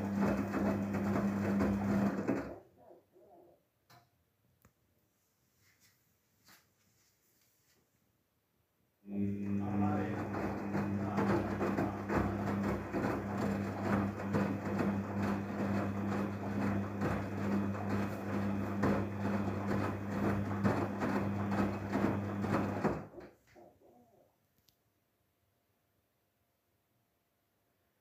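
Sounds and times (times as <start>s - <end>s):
washing machine water sloshing: 0.0s - 2.6s, 9.6s - 23.2s
washing machine low hum: 0.0s - 3.4s, 9.1s - 24.2s.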